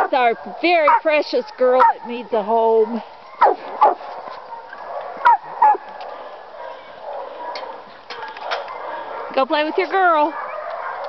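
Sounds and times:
dog yipping: 2.8s - 5.9s, 10.1s - 11.0s.

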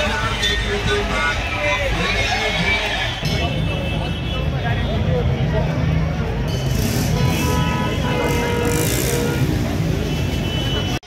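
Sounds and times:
large crowd noise: 0.0s - 11.0s.

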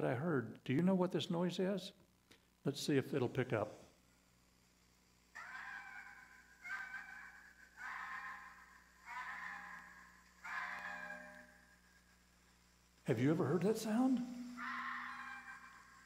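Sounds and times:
fox screams through phone speaker: 5.4s - 11.6s, 13.6s - 16.0s.

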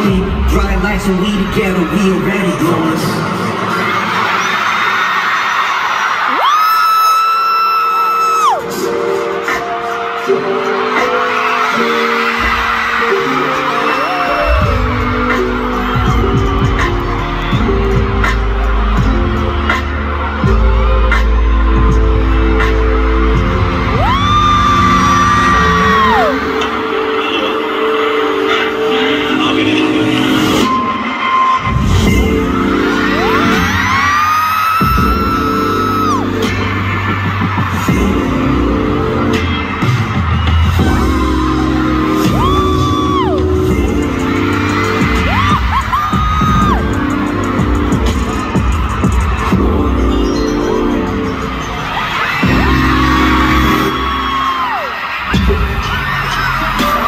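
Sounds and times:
loud pop concert music: 0.0s - 57.0s.

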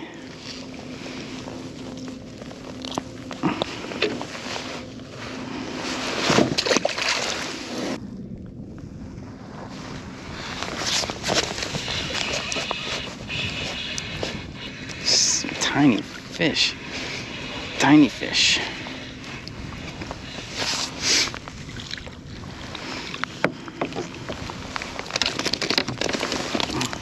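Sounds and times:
water lapping against kayak hull: 18.6s - 27.0s.

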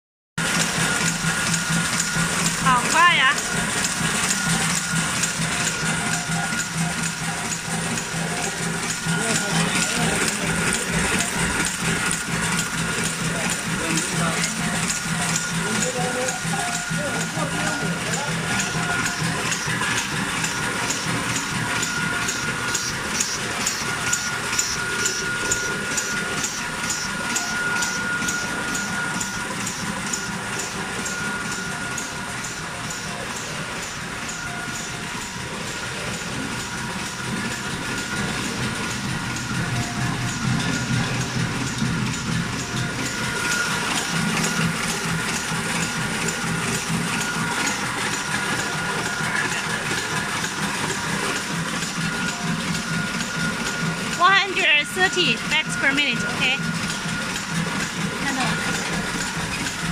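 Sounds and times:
steady high whine: 0.4s - 59.9s
steady low hum: 0.4s - 59.9s.

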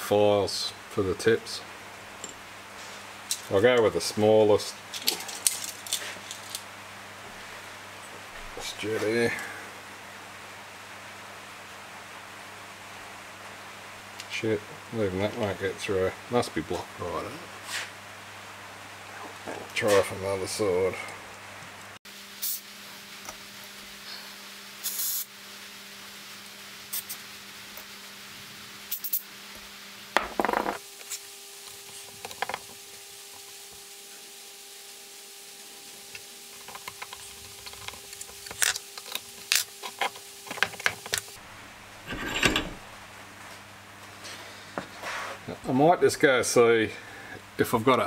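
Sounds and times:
metal scraping: 42.0s - 42.9s.

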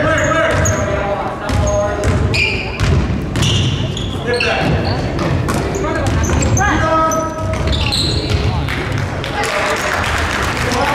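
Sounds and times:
sneaker squeaks: 0.0s - 8.7s.

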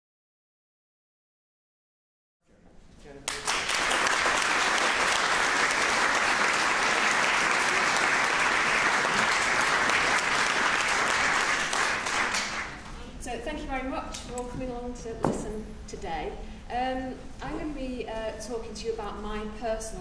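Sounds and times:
audience applauding: 3.3s - 12.8s.

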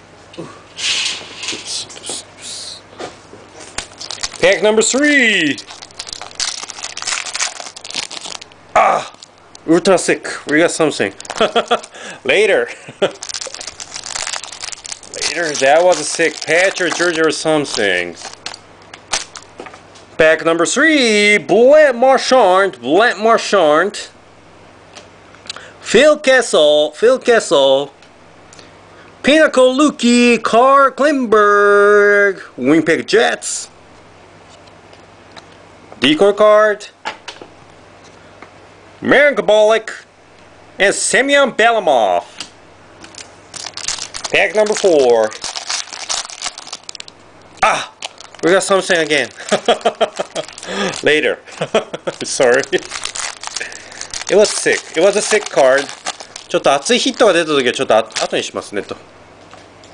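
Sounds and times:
steady low hum: 0.0s - 59.9s
foil wrapper crinkling: 3.7s - 9.9s, 10.5s - 19.6s, 43.0s - 58.9s.

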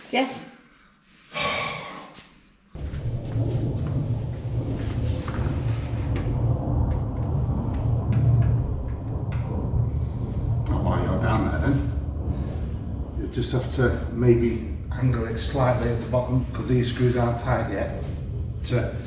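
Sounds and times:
loud low rumble: 2.8s - 19.0s.

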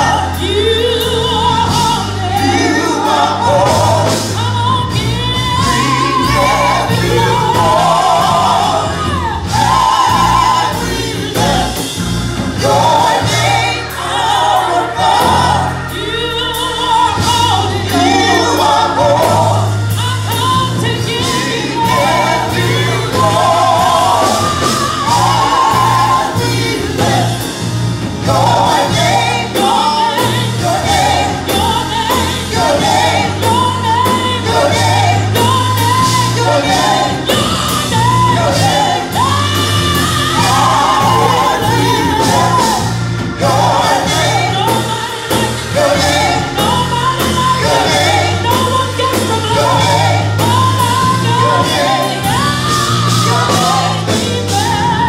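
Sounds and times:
backing instruments with bass: 0.0s - 55.0s
choir singing in harmony: 0.0s - 55.0s.

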